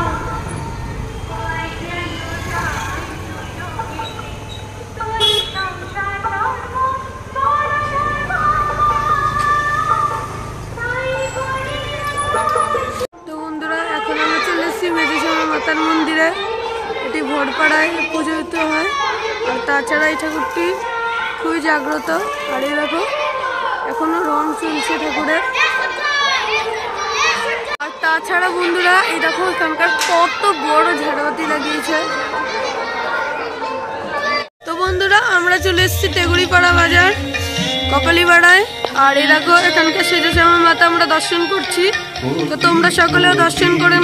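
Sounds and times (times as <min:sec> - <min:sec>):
children chattering and calling out: 0:00.0 - 0:44.0
traffic: 0:00.0 - 0:44.0
voices: 0:00.0 - 0:44.0
vehicle horn toot: 0:05.1 - 0:05.8.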